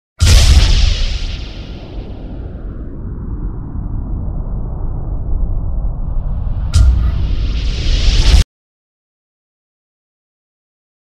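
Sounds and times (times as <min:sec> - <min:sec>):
loud boom with hiss: 0:00.2 - 0:08.4
low rumble: 0:00.2 - 0:08.4.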